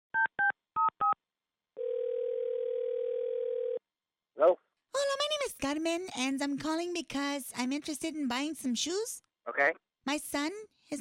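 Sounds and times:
telephone ringback tone: 0:01.8 - 0:03.8.

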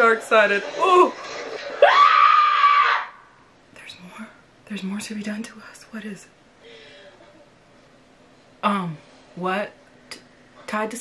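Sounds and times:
high-pitched scream: 0:01.8 - 0:03.4.

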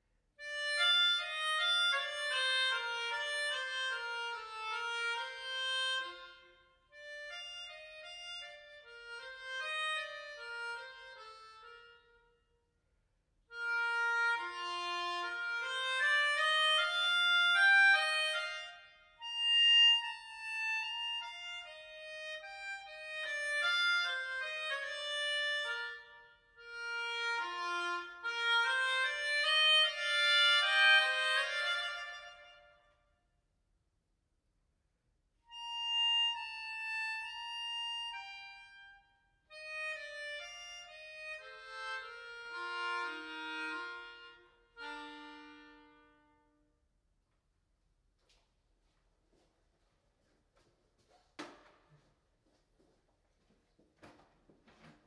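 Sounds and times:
melodica melody: 0:00.4 - 0:12.5, 0:13.5 - 0:32.8, 0:35.5 - 0:46.7.

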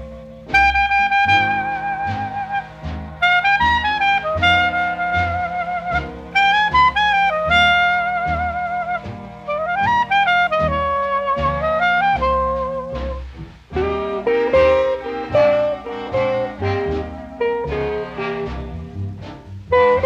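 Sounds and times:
bass notes on steady beat: 0:00.0 - 0:20.0
horn vibrato melody: 0:00.0 - 0:20.0
swing band music: 0:00.0 - 0:20.0.

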